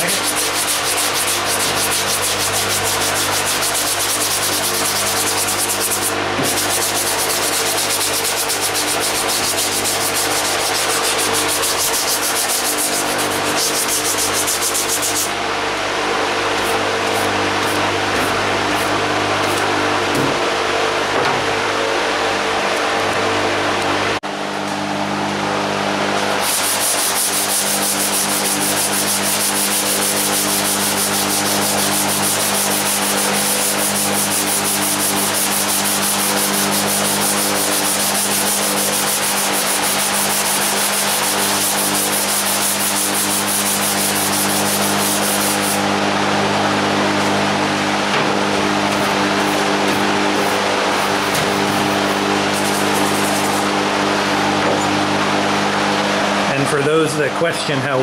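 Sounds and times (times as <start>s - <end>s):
hand sanding scraping strokes: 0.0s - 15.4s, 16.6s - 19.6s, 26.3s - 45.9s, 48.8s - 53.7s
fan humming: 0.0s - 58.0s.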